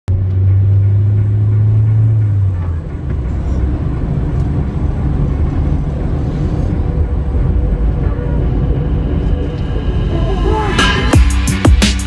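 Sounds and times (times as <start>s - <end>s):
car engine and road rumble: 0.1s - 12.0s.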